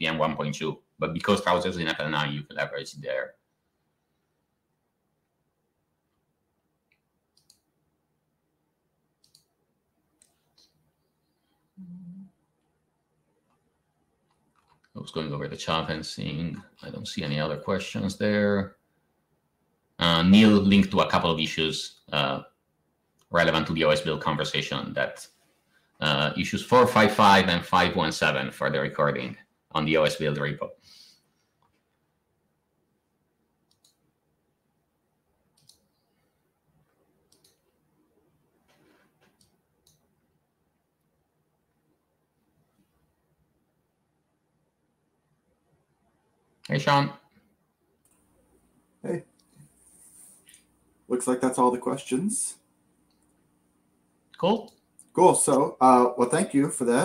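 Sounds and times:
faint sharp clicks: 6.9 - 7.7, 9.2 - 9.5, 35.6 - 36.0, 37.3 - 37.7.

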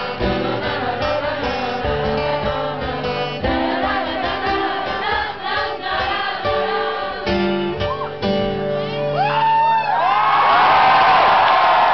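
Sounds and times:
acoustic guitar strumming: 0.0 - 9.8
audience whooping and cheering: 9.1 - 11.9.

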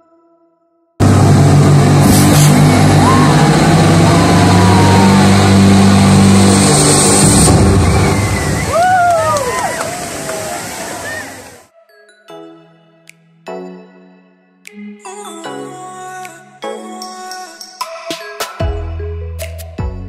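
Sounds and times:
water cascading: 1.0 - 11.6
gas flame jets hissing: 1.7 - 2.9
crowd voices exclaiming: 2.7 - 6.0, 7.6 - 11.6.

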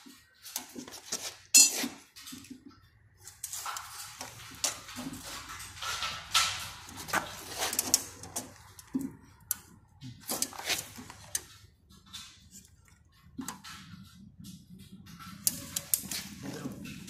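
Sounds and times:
hand tools clinking on concrete: 0.5 - 2.3.

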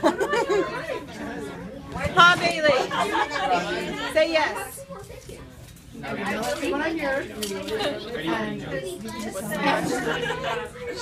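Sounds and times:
people chatting: 6.0 - 11.0.

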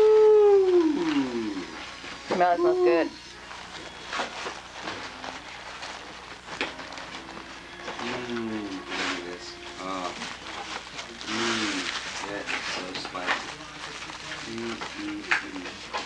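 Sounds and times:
gift wrapping rustling: 0.2 - 16.0
quiet voices talking: 8.0 - 16.0.

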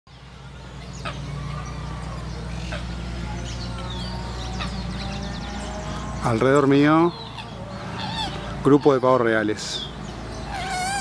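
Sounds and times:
bird chirps and calls: 0.1 - 11.0.

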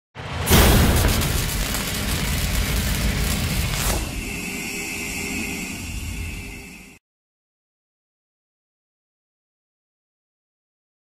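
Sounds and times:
cinematic boom rumbling: 0.2 - 4.3
sharp whooshing hit: 0.2 - 4.4
low hum: 0.5 - 7.0
high ringing tone: 2.5 - 7.0.

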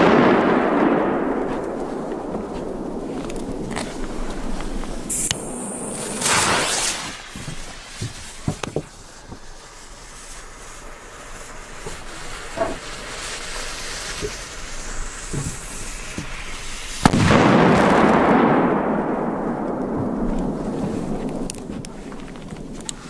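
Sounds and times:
loud firecracker bang: 0.0 - 8.8, 17.0 - 22.8
rumble and crackle: 0.0 - 23.0
burning fuse hissing: 1.6 - 18.0, 20.2 - 23.0.

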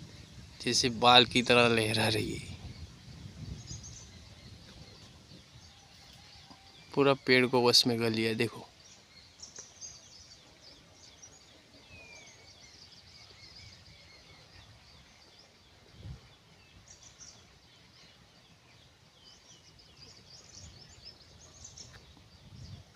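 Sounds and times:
low rumble on microphone: 0.0 - 5.8, 20.4 - 22.9
small birds chirping: 0.0 - 22.9.

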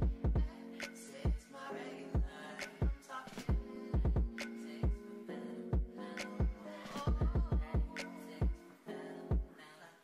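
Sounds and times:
deep kick drum hits: 3.5 - 4.4, 7.1 - 7.9.

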